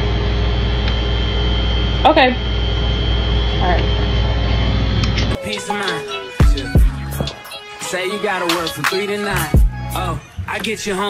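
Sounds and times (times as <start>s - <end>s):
thin high whine: 0.0s - 11.0s.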